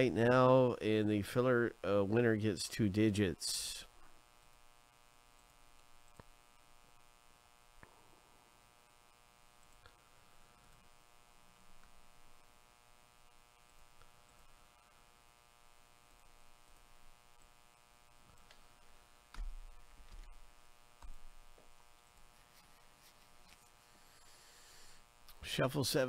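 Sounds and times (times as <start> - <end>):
faint electrical hum: 0.0 - 26.0.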